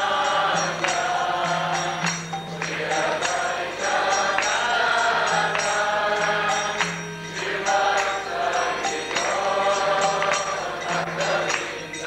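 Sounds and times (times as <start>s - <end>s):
group singing devotional chant: 0.0s - 12.0s
hand drum: 0.0s - 12.0s
hand clapping: 0.3s - 12.0s.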